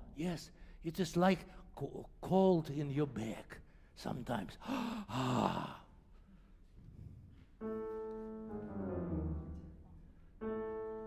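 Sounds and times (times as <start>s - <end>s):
grand piano playing: 7.6s - 11.0s.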